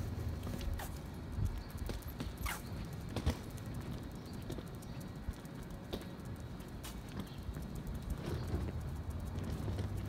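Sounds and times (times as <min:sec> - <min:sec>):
footsteps on concrete: 0:00.0 - 0:10.0
low outdoor rumble: 0:00.0 - 0:10.0.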